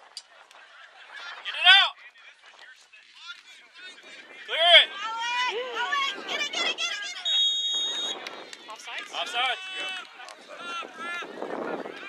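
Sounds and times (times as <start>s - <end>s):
players and spectators shouting: 0.6s - 12.0s
referee's whistle blast: 7.2s - 8.2s.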